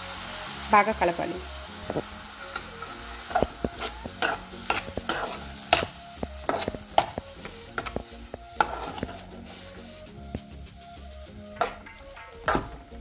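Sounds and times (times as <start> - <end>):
vegetables sizzling: 0.0 - 13.0
metal spoon scraping metal pan: 1.8 - 13.0.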